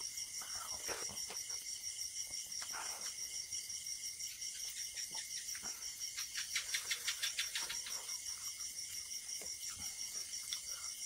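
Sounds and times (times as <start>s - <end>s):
crickets chirping: 0.0s - 11.0s
wet clicky eating by hand: 4.5s - 11.0s.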